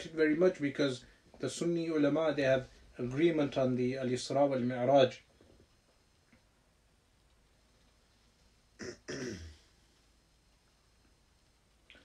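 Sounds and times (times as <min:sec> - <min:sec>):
man clearing his throat: 0:08.8 - 0:09.6.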